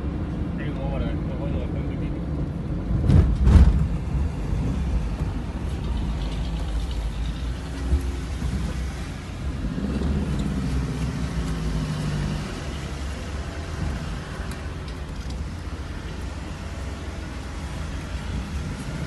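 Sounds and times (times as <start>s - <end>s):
car engine and tyres rumbling: 0.0s - 19.0s
thump: 3.0s - 4.0s.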